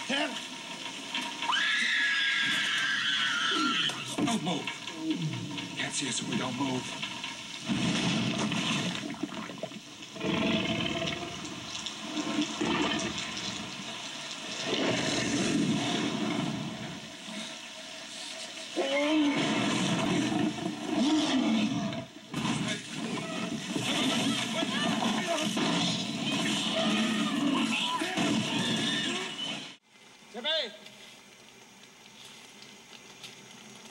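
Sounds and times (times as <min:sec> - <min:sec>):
heavy rain pouring: 0:00.0 - 0:30.4
dinosaur growls and roars: 0:10.1 - 0:13.5, 0:14.6 - 0:17.5, 0:18.8 - 0:26.0.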